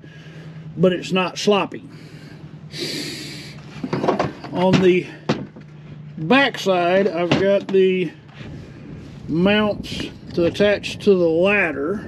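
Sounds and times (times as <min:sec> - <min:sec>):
man breathing sharply through nose: 0:00.0 - 0:00.8, 0:01.9 - 0:03.7, 0:08.3 - 0:09.3.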